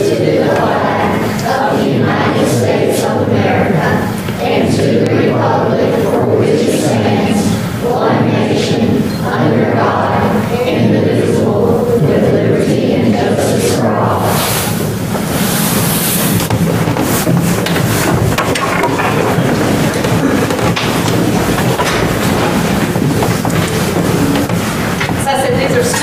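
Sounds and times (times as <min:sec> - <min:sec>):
indistinct voices: 0:00.0 - 0:26.0
rumbling room noise: 0:00.0 - 0:26.0
person talking: 0:22.4 - 0:26.0.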